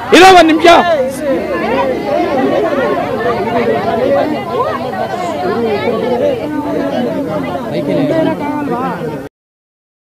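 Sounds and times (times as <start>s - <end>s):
crowd babble of voices: 0.0s - 9.3s.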